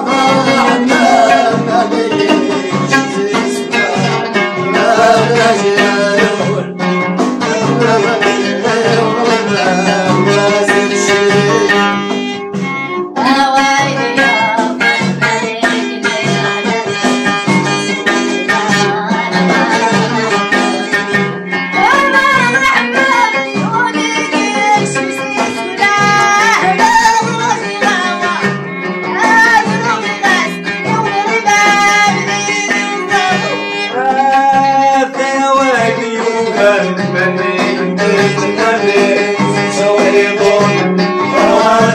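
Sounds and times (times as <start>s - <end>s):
frame drums beating: 0.0s - 41.9s
plucked lute: 0.0s - 41.9s.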